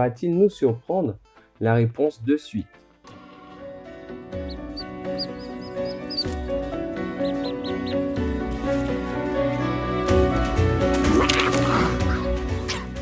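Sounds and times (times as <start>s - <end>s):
documentary soundtrack music: 0.0s - 13.0s
high chirping animal calls: 4.4s - 8.2s.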